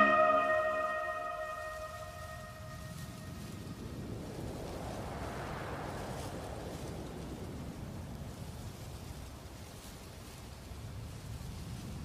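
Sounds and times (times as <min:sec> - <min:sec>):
background music: 0:00.0 - 0:02.7.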